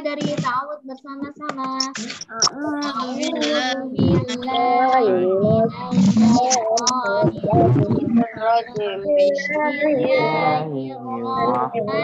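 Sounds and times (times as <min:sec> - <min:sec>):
children and woman chanting recitation: 0:00.0 - 0:12.0.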